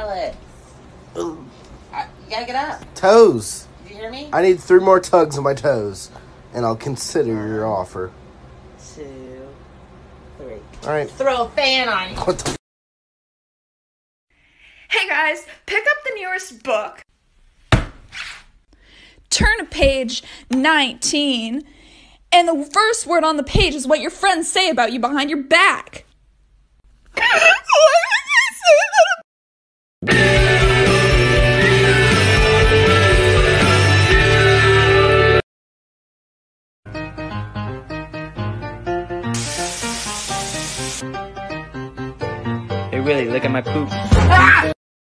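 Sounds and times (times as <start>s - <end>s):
thump on hardcover book: 17.7s - 18.1s
background music: 30.0s - 35.4s, 36.9s - 44.7s
tap water running: 39.3s - 41.0s.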